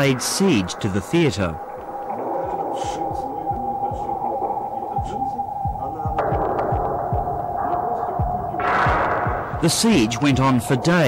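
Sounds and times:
burst of noise: 0.0s - 11.0s
hissing: 0.0s - 11.0s
low thuds dropping in pitch: 0.0s - 11.0s
steady hum: 0.0s - 11.0s.

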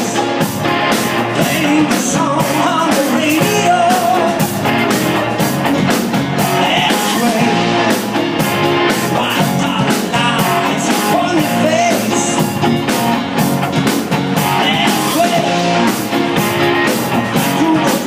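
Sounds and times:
live rock band playing: 0.0s - 18.0s.

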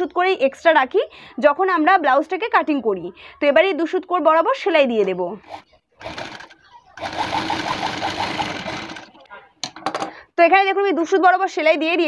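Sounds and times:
sewing machine stitching: 5.4s - 9.2s.

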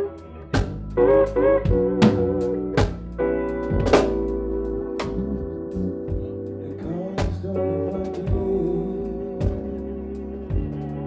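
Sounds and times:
live band playing: 0.0s - 11.0s
drum and cymbal hits: 0.6s - 1.0s, 1.7s - 4.4s.

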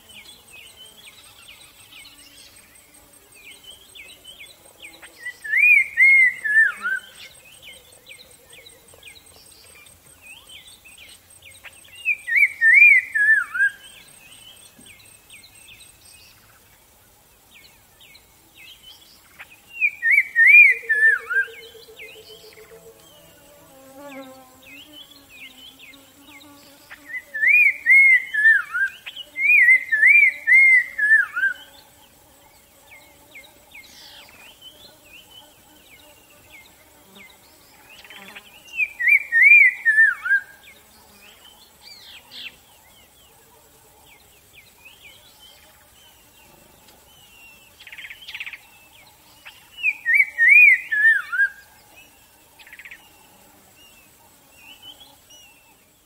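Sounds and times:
faint bird chirps: 0.0s - 56.0s
songbird singing: 0.0s - 56.0s.

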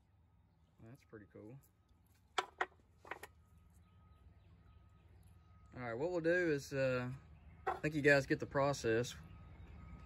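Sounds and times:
rock clacking on hard surface: 2.3s - 3.3s, 7.7s - 7.9s.

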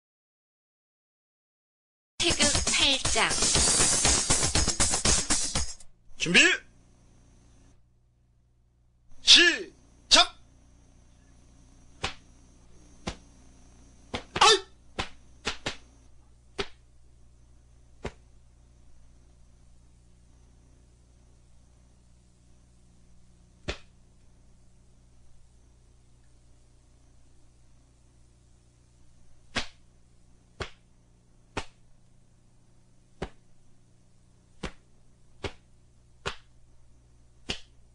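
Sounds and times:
sharp cracks of strikes: 12.0s - 12.2s, 14.1s - 15.8s, 23.6s - 23.9s, 29.5s - 29.8s
uniform cloth snapping: 12.0s - 12.2s, 14.1s - 15.8s, 23.6s - 23.9s, 29.5s - 29.8s, 30.6s - 30.8s, 31.6s - 31.8s, 34.6s - 34.8s, 35.4s - 36.5s, 37.5s - 37.7s
person shouting: 14.4s - 14.7s.

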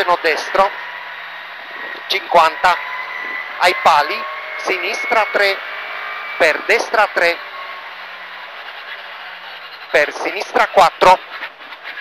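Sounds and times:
rally car engine roar: 0.0s - 12.0s.

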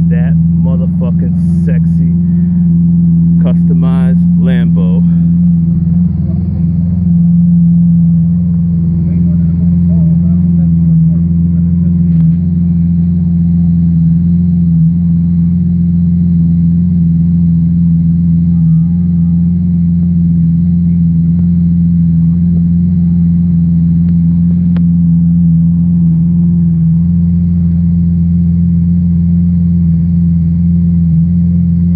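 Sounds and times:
car engine idling: 0.0s - 31.9s.

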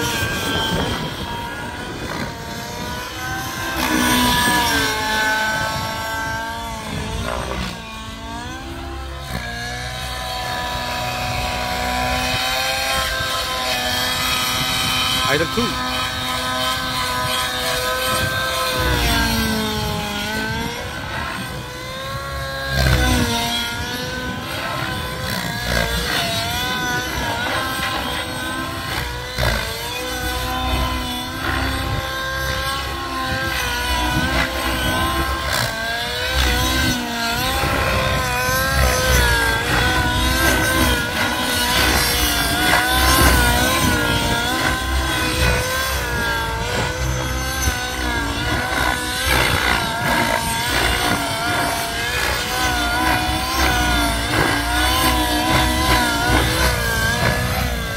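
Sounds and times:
model helicopter engine and rotors: 0.0s - 57.9s.

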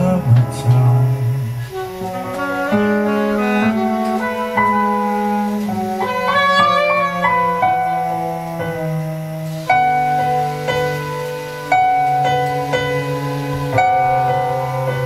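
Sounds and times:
saxophones playing in harmony: 0.0s - 15.0s.

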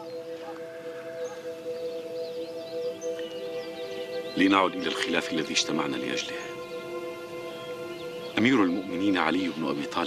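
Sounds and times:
soft sustained drone music: 0.0s - 10.0s.

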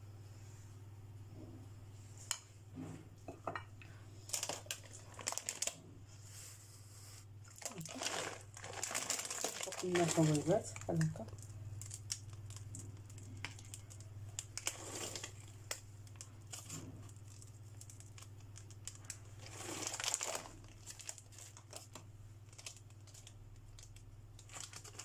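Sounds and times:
low steady hum: 0.0s - 25.0s
paper rustling: 4.3s - 6.5s, 7.5s - 11.0s, 16.4s - 23.2s
chocolate chips scattering: 7.6s - 21.9s.

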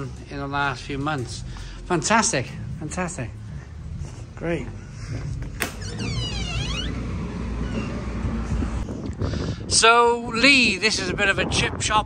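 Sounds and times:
low outdoor rumble: 0.0s - 11.4s
wind on microphone: 5.1s - 12.0s
door squeaking open: 5.6s - 8.2s.

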